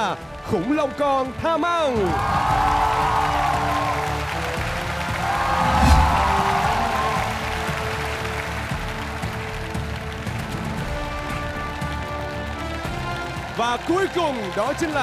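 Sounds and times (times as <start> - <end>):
audience applause: 0.6 - 15.0.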